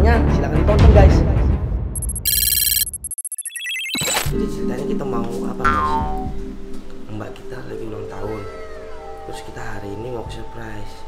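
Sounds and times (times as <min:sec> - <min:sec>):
high electronic ringing tone: 0:02.0 - 0:04.2.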